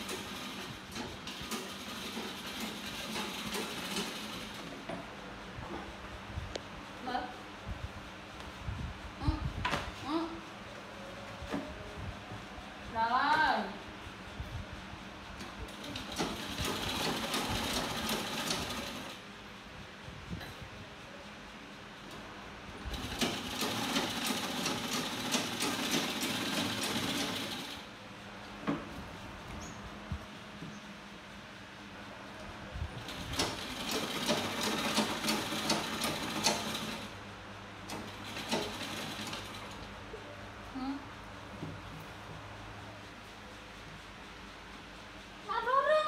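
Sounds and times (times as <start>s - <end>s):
sewing machine stitching: 0.0s - 4.7s, 15.7s - 19.2s, 22.9s - 27.8s, 33.0s - 37.1s, 37.9s - 39.8s.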